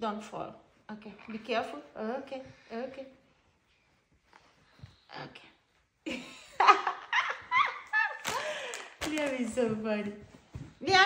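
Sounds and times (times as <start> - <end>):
woman laughing: 6.1 - 8.8.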